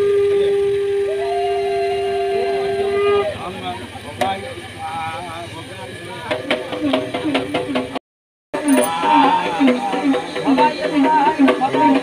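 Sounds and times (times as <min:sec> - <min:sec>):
higher blown horn note: 0:00.0 - 0:03.5
low blown horn note: 0:00.0 - 0:03.5
voices: 0:01.2 - 0:08.0, 0:08.6 - 0:12.0.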